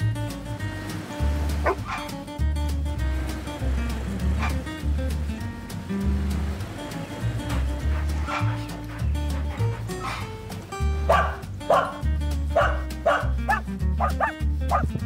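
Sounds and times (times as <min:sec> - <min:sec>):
background music with bass: 0:00.0 - 0:15.0.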